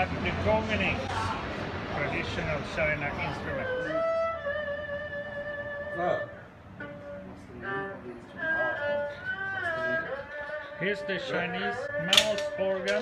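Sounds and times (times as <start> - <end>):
bowed string instrument melody: 3.0 - 13.0.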